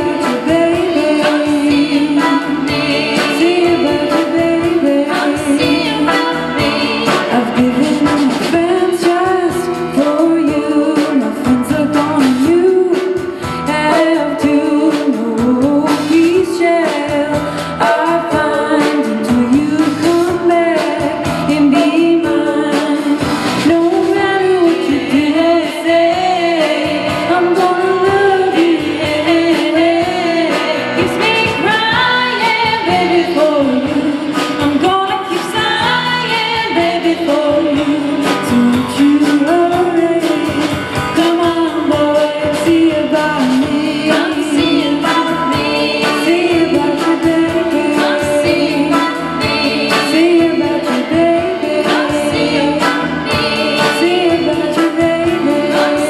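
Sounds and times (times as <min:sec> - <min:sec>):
drums: 0:00.0 - 0:56.0
electric bass: 0:00.0 - 0:56.0
electric guitar: 0:00.0 - 0:56.0
woman singing: 0:00.0 - 0:56.0.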